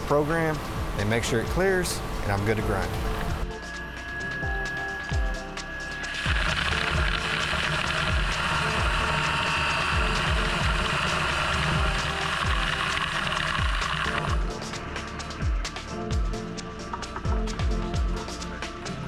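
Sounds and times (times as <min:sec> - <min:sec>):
background music with steady beat: 0:00.0 - 0:19.0
grinding wheel hissing on carbide: 0:03.5 - 0:15.4
coolant spray: 0:06.0 - 0:14.8.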